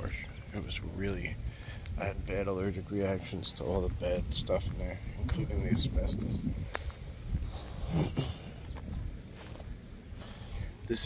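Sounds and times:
steady low rumble: 0:00.0 - 0:11.0
footsteps rustling through grass: 0:08.6 - 0:10.9.

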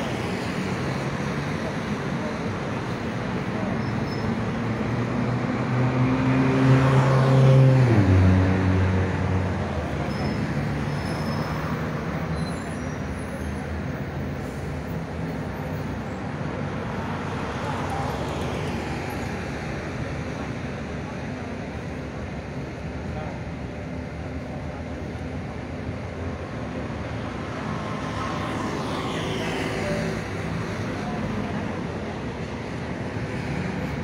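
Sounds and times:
road traffic: 0:00.0 - 0:34.0
vehicle passing close by: 0:05.0 - 0:09.6.

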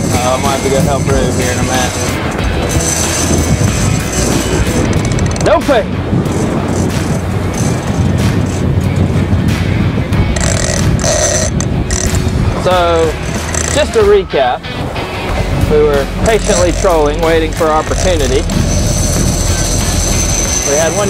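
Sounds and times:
background music: 0:00.0 - 0:21.0
outboard engines rumbling: 0:00.0 - 0:21.0
water noise: 0:00.0 - 0:21.0
wind: 0:00.0 - 0:21.0.

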